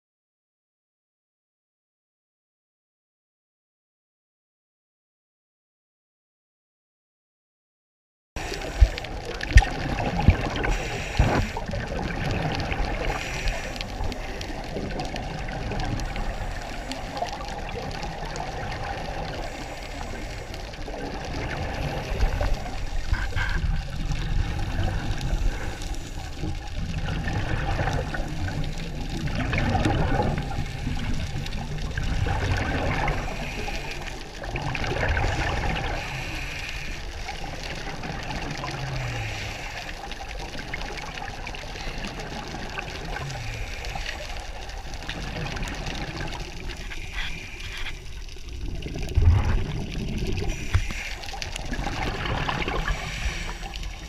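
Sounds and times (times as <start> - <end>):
scuba regulator bubbles gurgling: 8.4 - 54.0
steady underwater hiss: 8.4 - 54.0.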